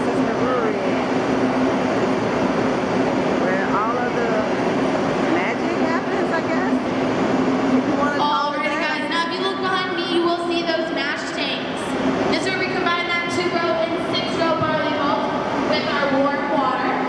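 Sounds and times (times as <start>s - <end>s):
machinery hum: 0.0s - 17.0s
scattered voices: 3.4s - 7.1s, 7.7s - 11.1s.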